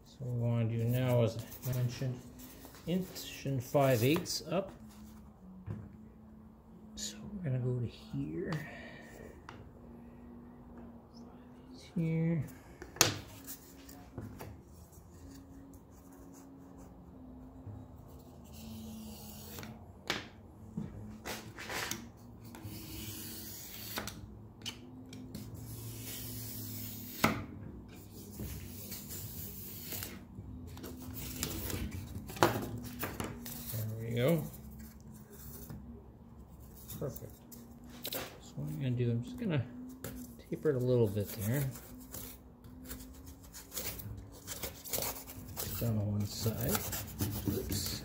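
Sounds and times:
low steady hum: 0.0s - 48.0s.

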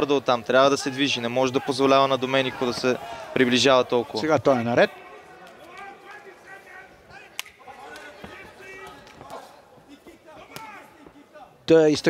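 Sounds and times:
faint voices calling out: 0.7s - 11.6s.

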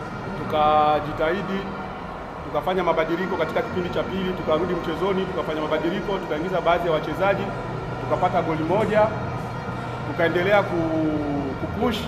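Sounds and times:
man speaking: 2.5s - 9.2s, 10.1s - 12.0s.

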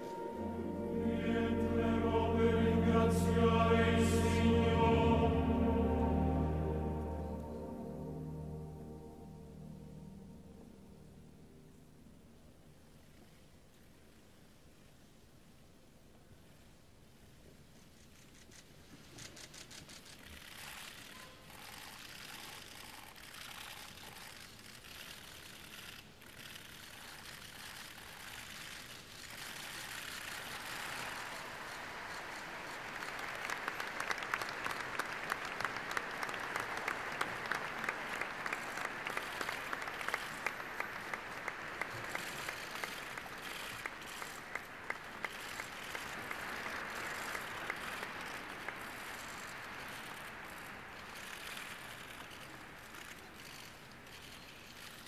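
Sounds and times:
crowd applauding: 29.4s - 51.6s.

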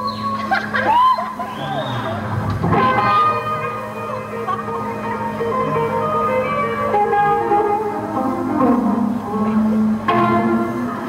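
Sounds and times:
electric guitar: 0.0s - 11.0s
live blues band: 2.2s - 11.0s.

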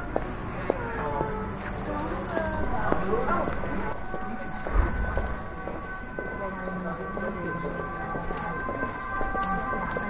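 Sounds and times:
voices of passers-by: 0.0s - 10.0s.

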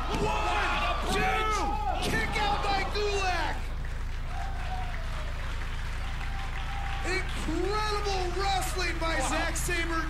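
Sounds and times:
crowd applauding: 0.0s - 10.0s
steady low hum: 0.0s - 10.0s.

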